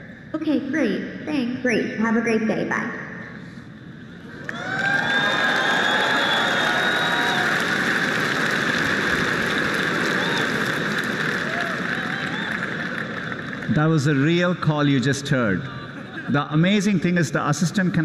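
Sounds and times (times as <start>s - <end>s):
audience applauding and cheering: 4.2s - 15.0s
whoops from crowd: 4.3s - 8.8s, 9.6s - 13.0s.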